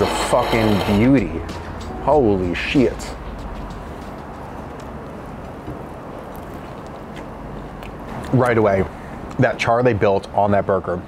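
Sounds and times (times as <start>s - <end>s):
city street background noise: 0.0s - 11.0s
man chewing food: 5.8s - 8.3s.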